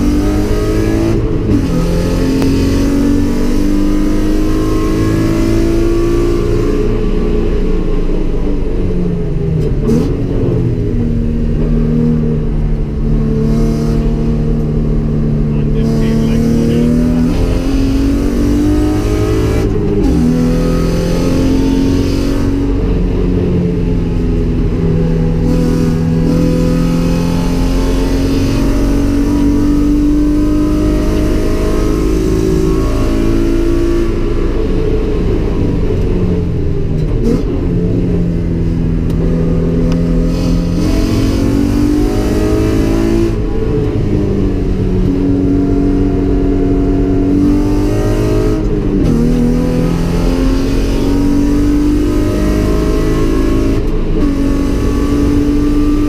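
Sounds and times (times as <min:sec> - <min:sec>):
car engine revving: 0:00.0 - 0:56.0.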